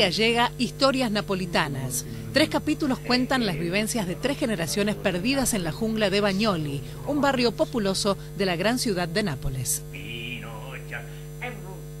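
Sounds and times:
electrical mains hum: 0.0s - 12.0s
faint voices: 1.3s - 7.6s.

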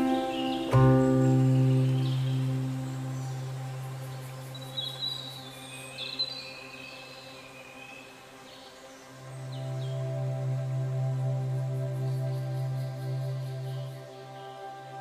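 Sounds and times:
soft ambient music chord: 0.0s - 15.0s.

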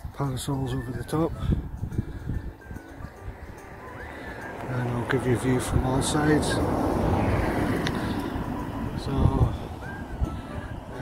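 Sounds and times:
car passing on road: 2.3s - 11.0s.

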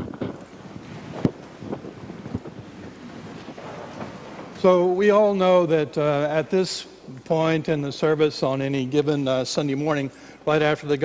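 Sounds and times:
microphone handling rustle: 0.0s - 4.7s.

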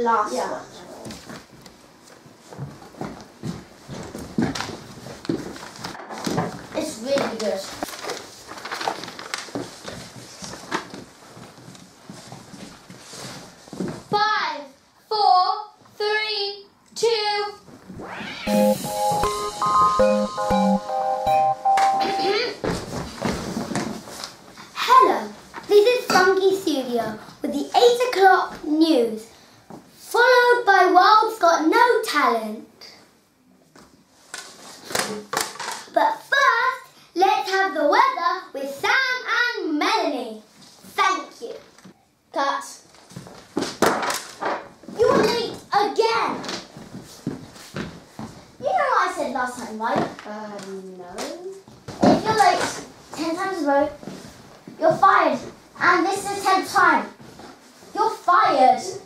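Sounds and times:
footsteps on wooden floor: 2.1s - 6.7s.

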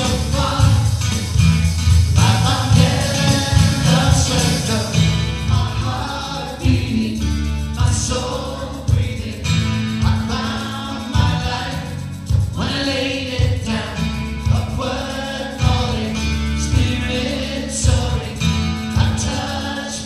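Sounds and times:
drum kit beat: 0.0s - 19.8s
acoustic guitar: 0.0s - 20.0s
bass line: 0.0s - 20.0s
voices singing together: 0.0s - 20.0s.

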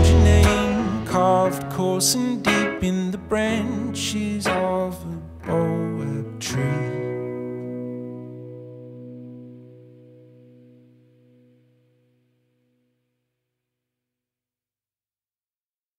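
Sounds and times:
acoustic guitar chord ringing: 0.0s - 13.0s.

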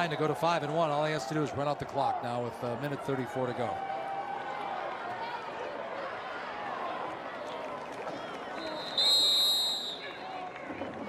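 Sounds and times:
stadium crowd noise: 0.0s - 11.0s
referee's whistle blowing: 8.6s - 10.3s.

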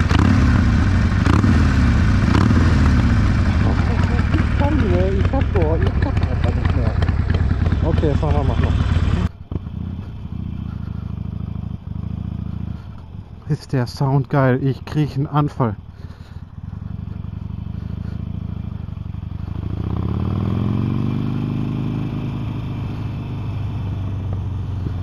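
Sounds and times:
motorcycle engine revving: 0.0s - 25.0s
motorcycle engine rumble under way: 0.0s - 25.0s.

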